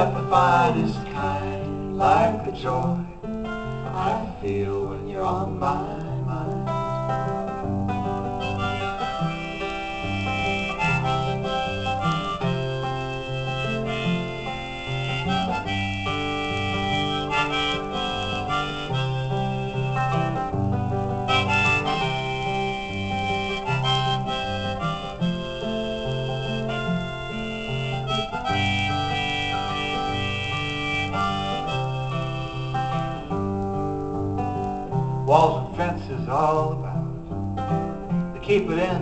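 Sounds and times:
harmonica playing melody: 0.0 - 2.1, 7.2 - 34.9
strummed acoustic guitar: 0.0 - 39.0.

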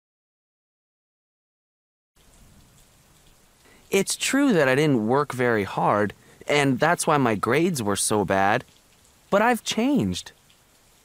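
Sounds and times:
faint recording hiss: 2.2 - 11.0
person speaking: 3.9 - 8.7, 9.3 - 10.3.

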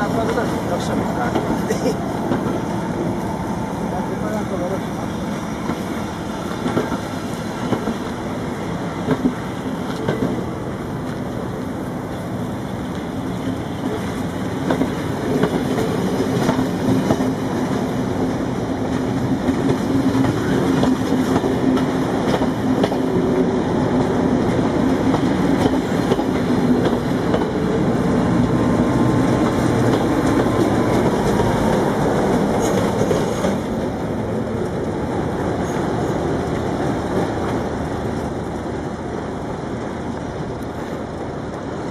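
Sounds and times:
train wheels clicking over rail joints: 4.3 - 38.4.

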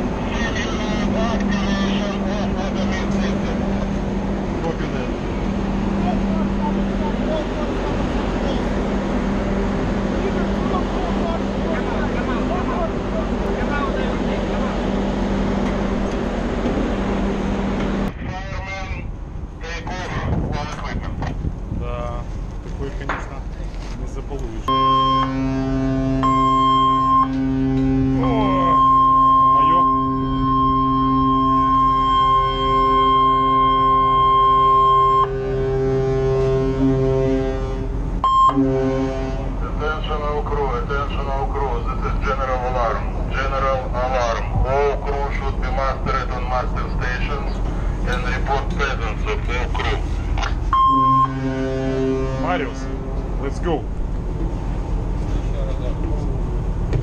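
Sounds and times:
voices: 0.0 - 16.4, 17.8 - 25.9, 27.0 - 35.0, 39.5 - 56.5
high alarm tone: 24.7 - 35.4, 38.2 - 38.8, 50.7 - 51.9
ship whistle blast: 24.7 - 39.4, 50.8 - 52.8.

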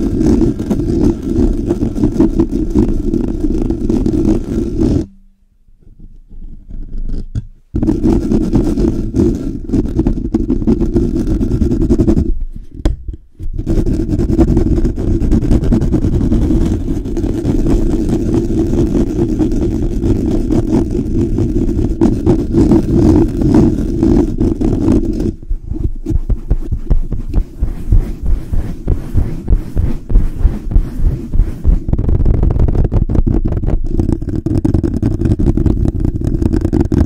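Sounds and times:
fingers scratching microphone grille: 0.0 - 5.1, 6.1 - 12.8, 13.4 - 37.0.

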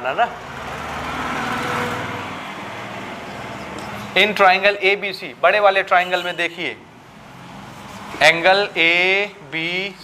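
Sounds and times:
motor vehicle passing by: 0.3 - 4.3, 7.0 - 9.0.

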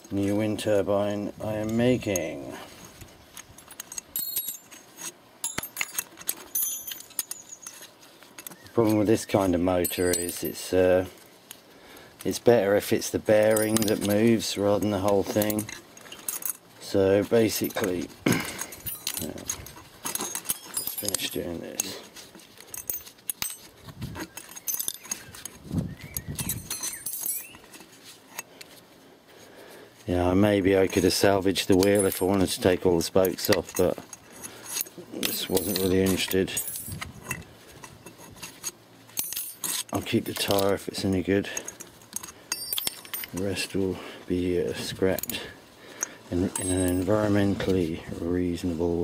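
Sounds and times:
light metal clinks and pings: 3.4 - 4.8, 5.4 - 10.8, 17.5 - 23.7, 24.4 - 28.5, 33.4 - 37.4, 41.5 - 43.7, 45.2 - 47.4.

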